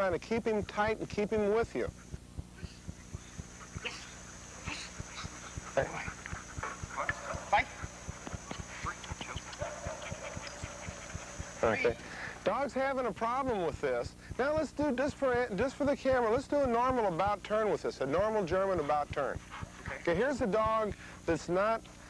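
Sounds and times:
fast ticking: 0:00.0 - 0:12.6
dog whining: 0:01.9 - 0:12.1.

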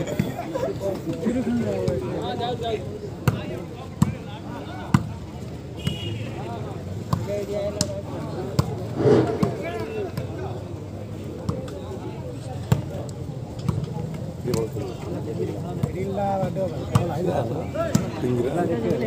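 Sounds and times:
spectators chattering and shouting: 0:00.0 - 0:19.0.

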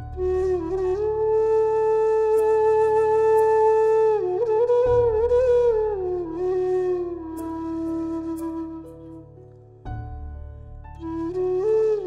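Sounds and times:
flute playing slow phrase: 0:00.0 - 0:12.0.

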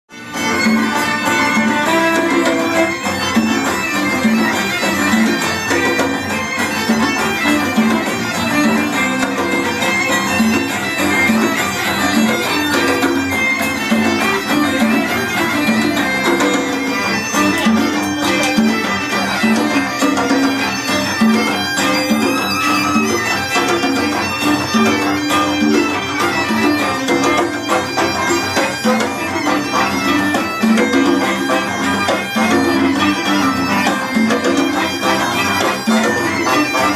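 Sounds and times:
live fusion band playing: 0:00.1 - 0:36.9
violin: 0:00.1 - 0:36.9.

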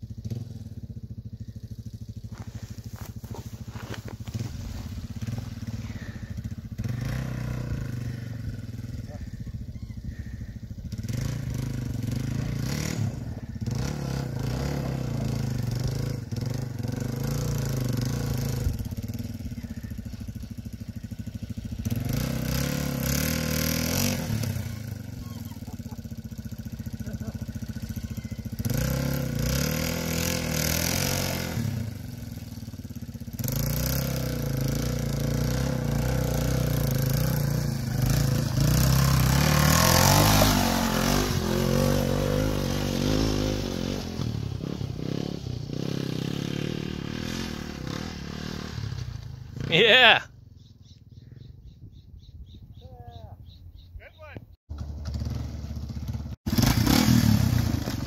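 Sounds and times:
motorcycle engine revving: 0:00.0 - 0:52.2, 0:54.7 - 0:58.0.

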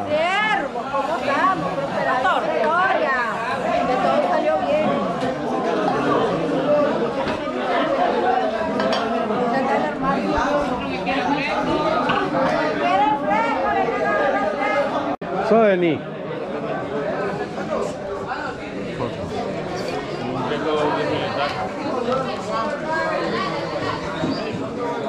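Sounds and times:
people talking over one another: 0:00.0 - 0:25.0
dishes clinking: 0:08.8 - 0:09.2.

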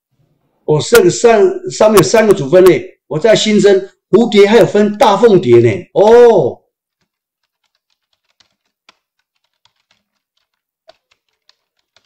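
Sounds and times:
keyboard typing clicks: 0:06.9 - 0:12.0.

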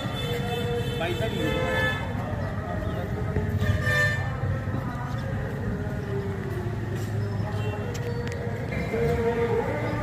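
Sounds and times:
people's voices: 0:00.0 - 0:10.0
vehicle traffic: 0:00.0 - 0:10.0.

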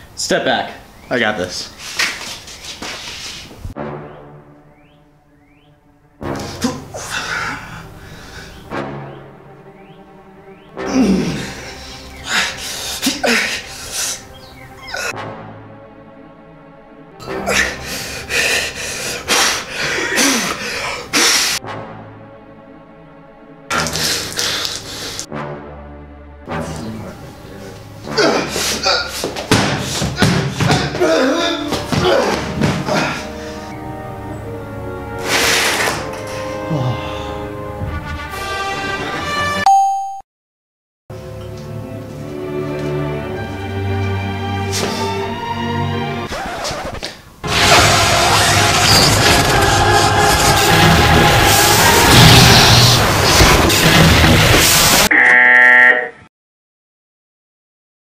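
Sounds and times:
crashing sound effects: 0:47.4 - 0:55.1
loud music: 0:47.4 - 0:55.1
sharp irregular thumps: 0:47.5 - 0:55.1.

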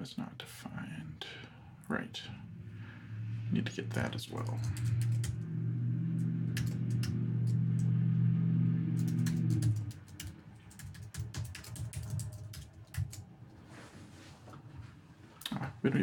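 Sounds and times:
low steady hum: 0:00.0 - 0:16.0
keyboard typing: 0:03.9 - 0:05.5, 0:06.2 - 0:07.9, 0:09.0 - 0:13.2.

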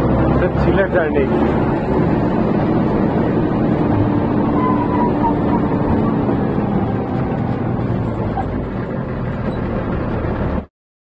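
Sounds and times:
bus engine drone: 0:00.0 - 0:10.7
road rumble: 0:00.0 - 0:10.7.

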